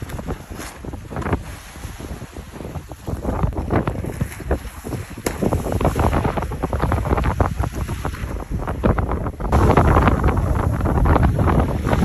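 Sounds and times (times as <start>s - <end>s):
strong wind buffeting microphone: 0.0s - 12.0s.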